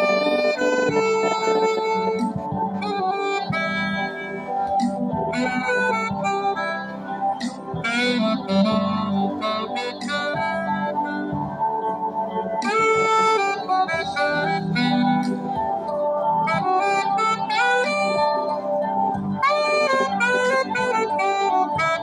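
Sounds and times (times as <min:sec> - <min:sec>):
saxophone playing slow melody: 0:00.0 - 0:22.0.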